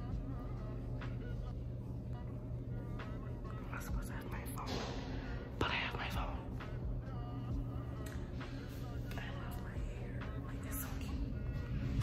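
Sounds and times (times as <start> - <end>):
steady low hum: 0.0 - 12.0
woman whispering: 3.6 - 4.7, 5.5 - 6.6, 9.0 - 11.4.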